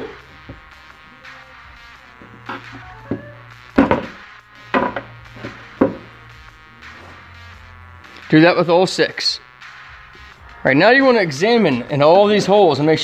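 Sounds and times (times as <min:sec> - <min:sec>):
background music: 0:00.0 - 0:13.0
sharp knocks on wooden bench: 0:03.8 - 0:05.1.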